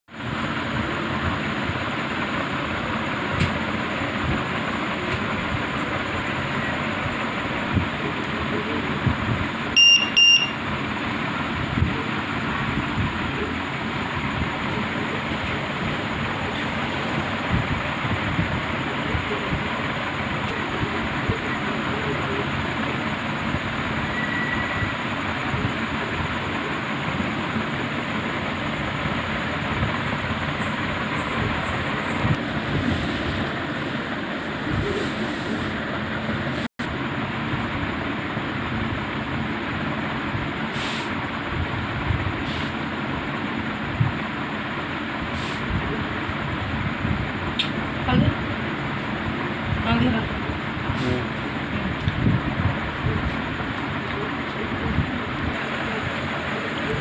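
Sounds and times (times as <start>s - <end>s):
buzzer beeps: 9.8s - 10.6s.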